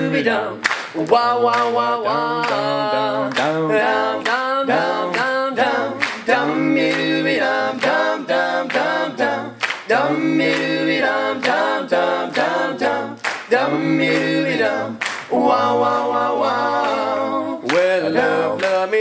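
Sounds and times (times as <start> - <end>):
male group singing in harmony: 0.0 - 19.0
hand claps: 0.6 - 3.6, 4.2 - 4.5, 5.1 - 5.4, 6.0 - 7.1, 9.6 - 12.6, 13.2 - 14.4, 15.0 - 16.1, 16.8 - 19.0.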